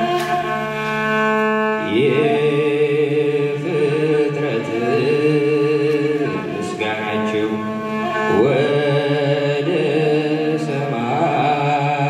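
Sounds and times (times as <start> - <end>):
sustained instrumental accompaniment: 0.0 - 12.0
man singing into a microphone: 1.8 - 7.6, 8.3 - 12.0.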